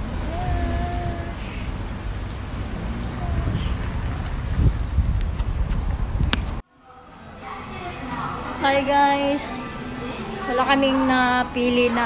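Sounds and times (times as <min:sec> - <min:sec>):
wind buffeting microphone: 0:00.0 - 0:06.6.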